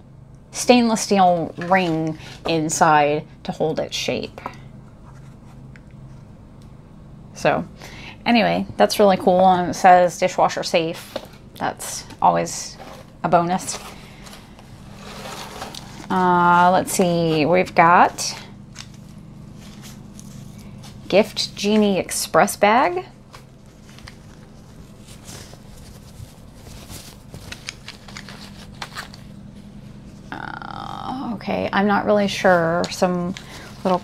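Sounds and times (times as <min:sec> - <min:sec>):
low steady hum: 0:00.0 - 0:34.0
rustling and scraping of items: 0:01.0 - 0:03.0, 0:04.3 - 0:06.4, 0:10.7 - 0:30.4, 0:32.2 - 0:34.0.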